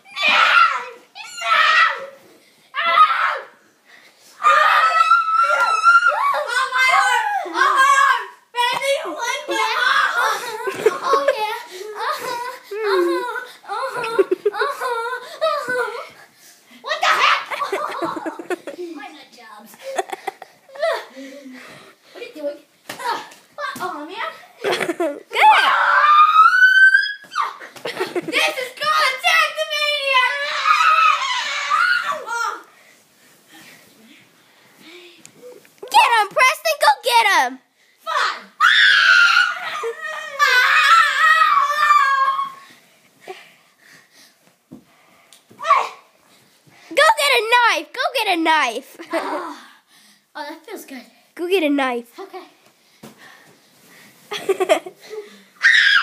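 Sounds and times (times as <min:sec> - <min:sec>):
child screaming: 0:00.1 - 0:02.1, 0:02.8 - 0:03.5, 0:04.4 - 0:08.3, 0:16.9 - 0:17.6, 0:25.4 - 0:27.6, 0:30.1 - 0:32.6, 0:38.1 - 0:42.6, 0:55.6 - 0:56.0.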